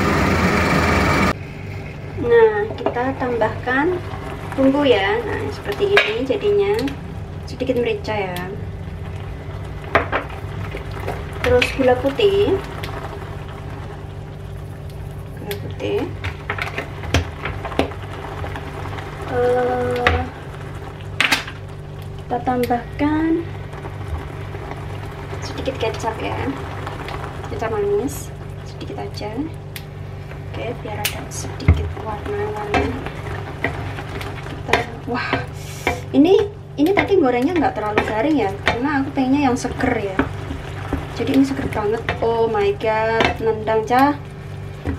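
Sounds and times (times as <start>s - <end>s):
low hum: 0.0s - 44.9s
sauce simmering in a pan: 3.2s - 8.0s, 8.6s - 44.9s.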